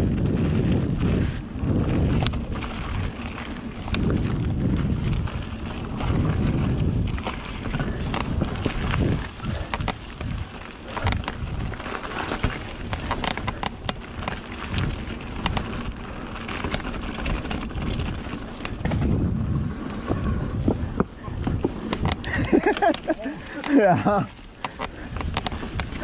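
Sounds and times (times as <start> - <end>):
bike clicking and rattling: 0.0 - 26.0
bike tyre rumble on dirt: 0.0 - 26.0.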